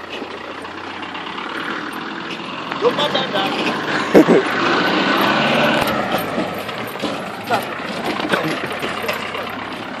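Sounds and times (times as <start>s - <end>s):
car engine running: 0.0s - 10.0s
voices: 2.7s - 4.5s, 5.8s - 10.0s.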